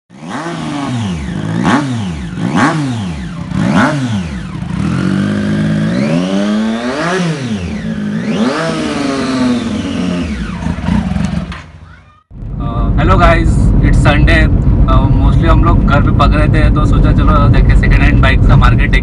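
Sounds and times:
motorcycle engine revving: 0.1 - 12.9.

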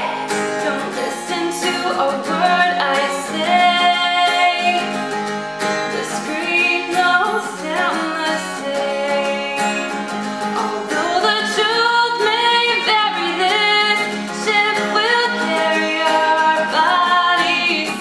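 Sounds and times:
acoustic guitar strumming: 0.0 - 18.0
woman singing: 0.0 - 18.0.

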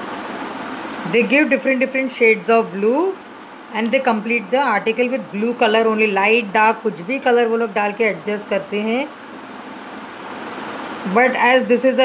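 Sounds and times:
indoor background hiss: 0.0 - 12.0.

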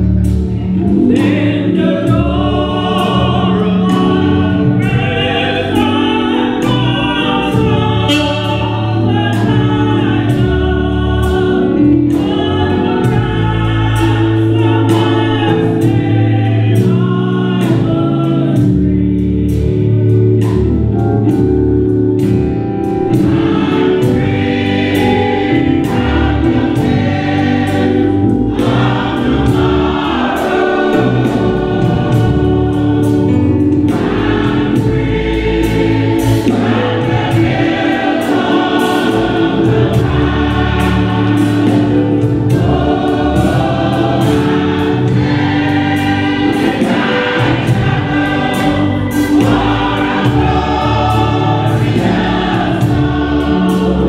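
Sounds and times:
choir singing gospel: 0.0 - 54.0
instrumental accompaniment with beat: 0.0 - 54.0.

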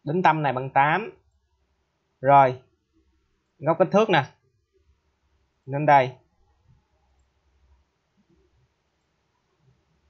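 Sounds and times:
spoken word: 5.7 - 6.1.

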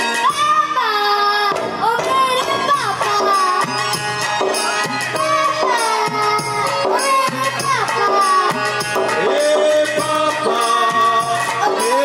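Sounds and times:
boy singing into microphone: 0.0 - 12.0.

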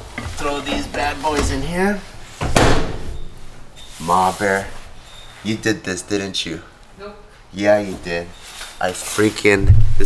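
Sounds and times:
microwave door slamming shut: 2.4 - 3.2.

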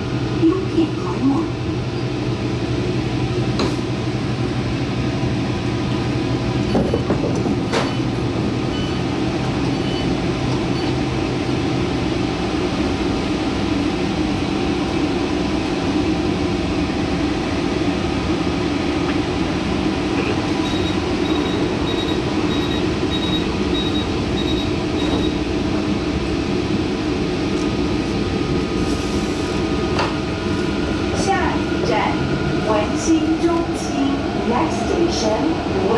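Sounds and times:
train hum and air conditioning: 0.0 - 35.9.

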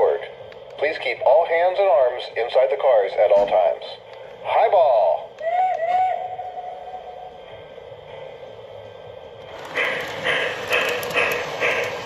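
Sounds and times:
steam locomotive whistle: 5.4 - 7.3
steam chuffs: 5.4 - 12.0.

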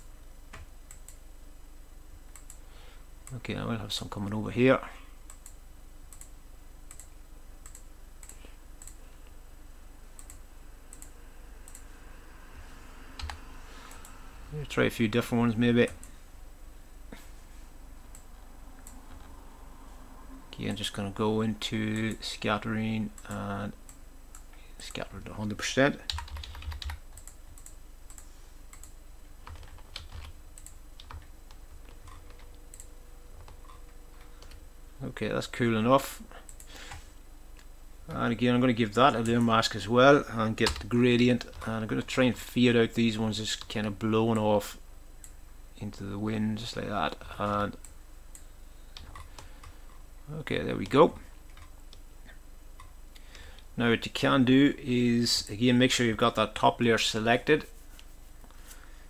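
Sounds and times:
computer mouse clicking: 0.0 - 1.2, 2.3 - 3.4, 5.3 - 6.3, 6.9 - 9.0, 10.1 - 11.9, 13.2 - 14.2, 18.1 - 19.4, 26.1 - 34.6
faint low hum: 0.0 - 59.0.

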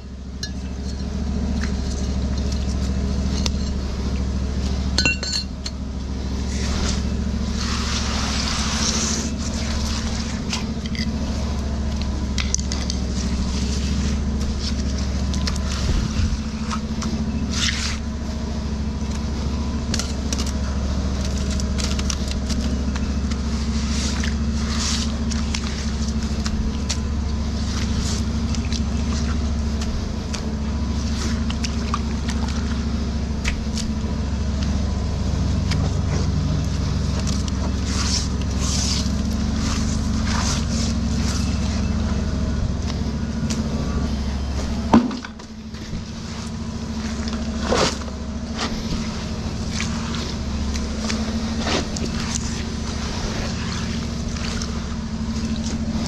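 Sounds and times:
engine droning: 0.0 - 56.0
wet debris scraping and crackling: 0.3 - 56.0.

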